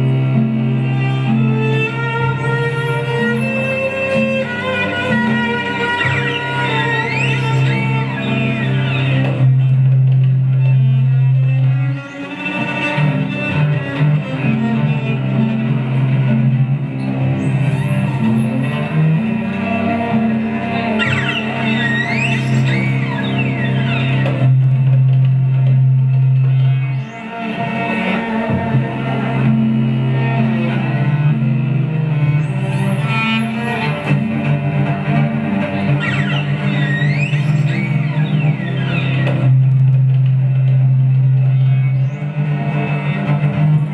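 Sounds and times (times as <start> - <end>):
bowed cello low notes: 0.0 - 43.9
sliding higher melody: 17.4 - 24.6, 35.8 - 39.4.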